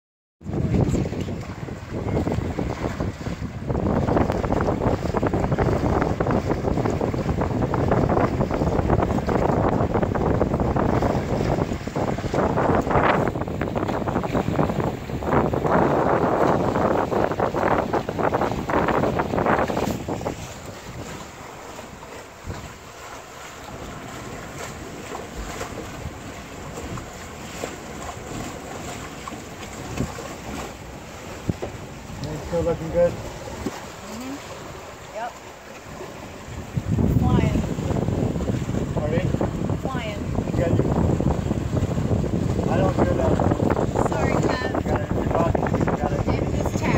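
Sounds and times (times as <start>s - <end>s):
water washing along a boat: 0.4s - 46.9s
wind buffeting microphone: 0.4s - 46.9s.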